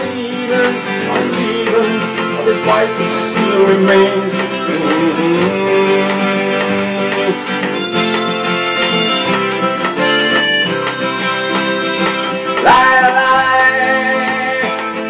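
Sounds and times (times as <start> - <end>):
acoustic guitar strumming: 0.0 - 15.0
harmonica playing held notes: 6.6 - 13.7.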